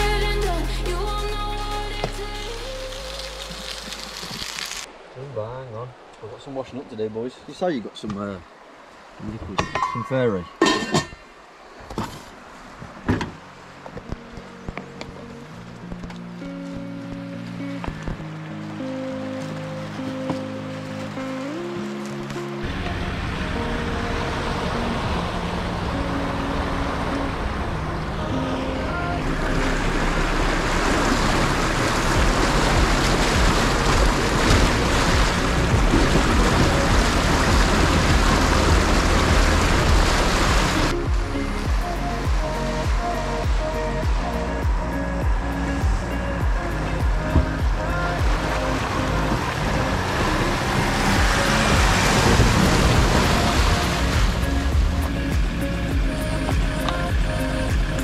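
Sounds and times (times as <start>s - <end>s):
background music: 0.0s - 4.2s, 13.6s - 58.0s
water rushing and splashing: 0.0s - 58.0s.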